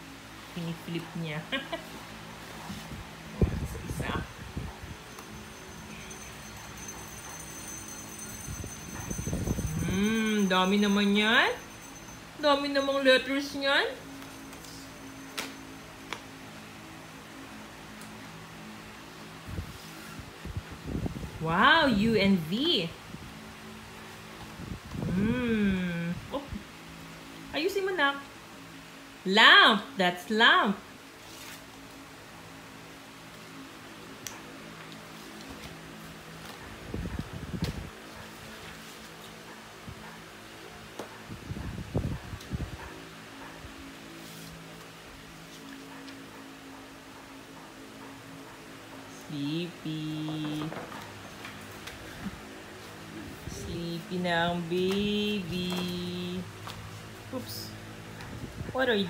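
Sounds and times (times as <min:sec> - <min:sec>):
woman humming low creaky tone: 0:24.9 - 0:26.5.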